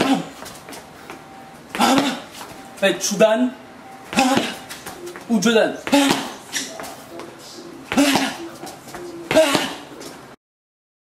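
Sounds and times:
man shouting karate kiai: 9.3 - 9.9.

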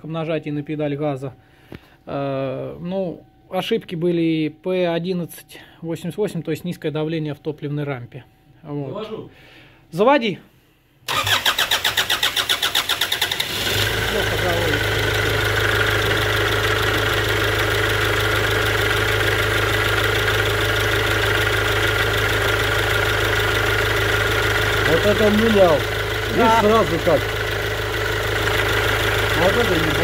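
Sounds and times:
diesel engine idling: 11.1 - 30.0
starter cranking engine: 11.1 - 30.0.

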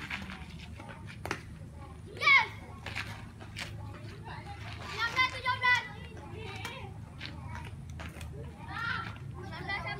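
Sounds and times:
child shouting: 2.1 - 2.6.

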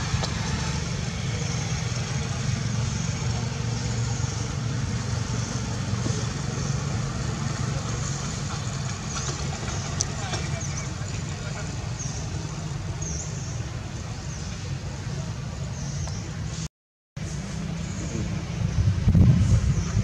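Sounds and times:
vehicle engine idling: 0.0 - 16.5.

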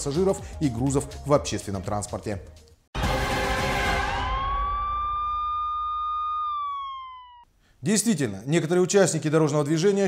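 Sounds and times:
siren tone: 3.0 - 7.4.

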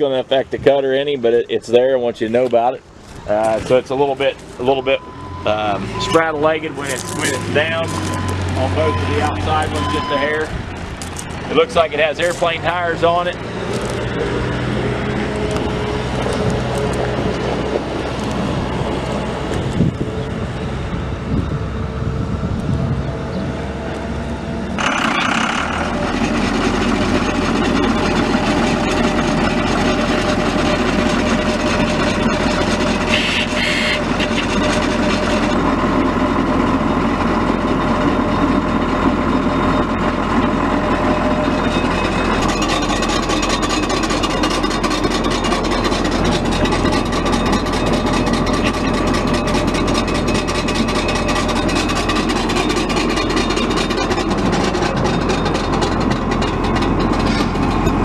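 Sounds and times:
tractor engine running: 0.0 - 58.0
steady higher whine: 1.5 - 58.0
rotary mower running: 2.8 - 21.5, 22.4 - 58.0.

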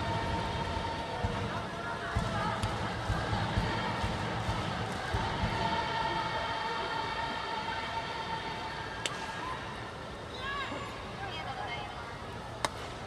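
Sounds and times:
drum beats: 0.0 - 5.9
crowd noise: 0.0 - 13.0.

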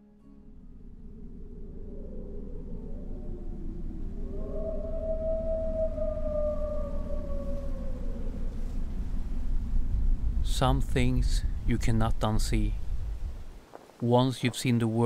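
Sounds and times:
low rumbling drone: 0.0 - 13.5.

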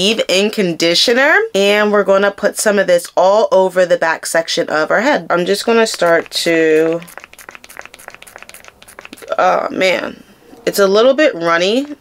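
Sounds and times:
wet sticky crackles: 5.6 - 9.3
pump bottle squirting clicks: 5.6 - 9.4.

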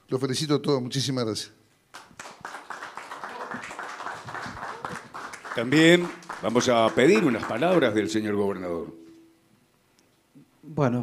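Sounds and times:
people applauding: 1.9 - 8.7.

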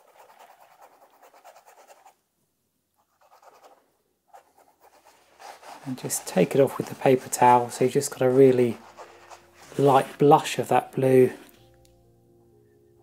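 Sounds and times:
paintbrush scratching on canvas: 0.0 - 2.2, 3.0 - 10.9.

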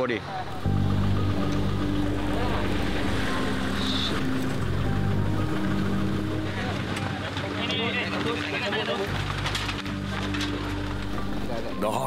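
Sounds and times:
faint outdoor noise: 0.0 - 12.0
music of sustained held notes: 0.0 - 12.0.

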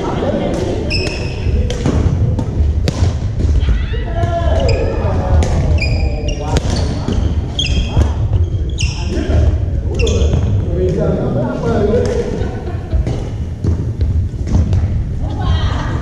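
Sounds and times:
voices chattering: 0.0 - 2.8, 3.4 - 13.8
low hall rumble: 0.0 - 16.0
sneaker squeaks: 0.9 - 1.6, 4.6 - 10.6.

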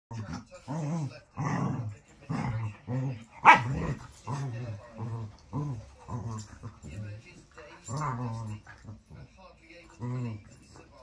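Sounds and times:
puppies play-growling: 0.1 - 11.0.

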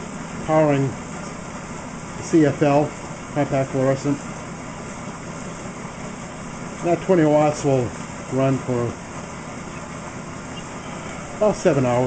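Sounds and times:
alternator whirring hum: 0.0 - 12.0.

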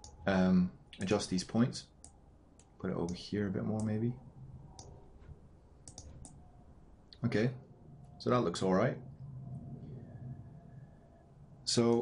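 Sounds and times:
faint background hum: 0.0 - 12.0
computer mouse clicks: 2.0 - 4.0, 5.8 - 6.4.

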